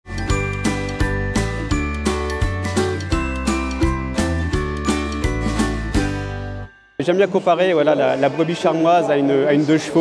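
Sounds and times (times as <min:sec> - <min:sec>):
intro jingle melody: 0:00.1 - 0:08.2.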